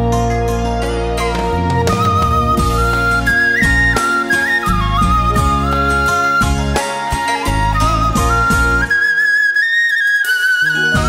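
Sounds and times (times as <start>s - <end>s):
bass and backing music: 0.0s - 9.0s, 10.7s - 11.0s
flute melody: 0.0s - 11.0s.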